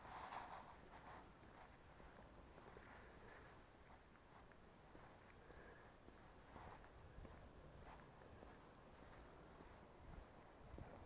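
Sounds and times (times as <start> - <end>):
faint rustle: 0.0 - 11.0.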